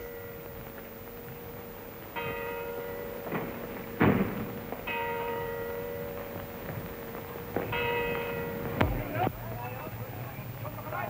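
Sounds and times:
bells ringing: 0.0 - 11.0.

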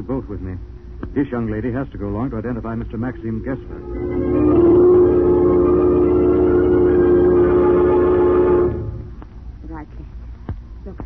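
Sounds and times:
sustained organ chord: 3.2 - 9.2.

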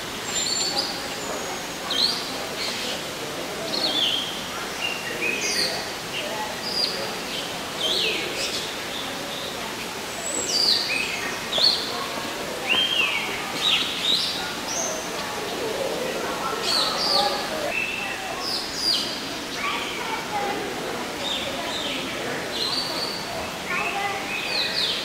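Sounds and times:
birds chirping: 0.2 - 20.4.

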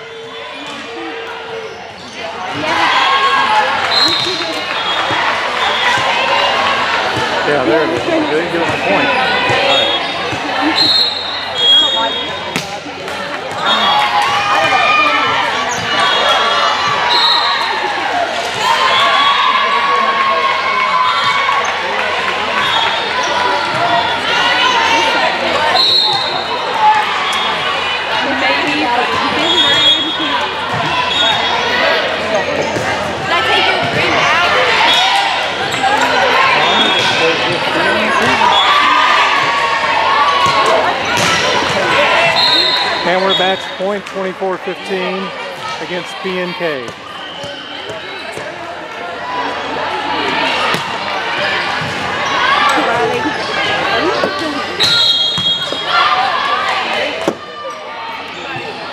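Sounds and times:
people chattering and calling: 0.0 - 58.9
volleyball being hit: 12.5 - 12.8.

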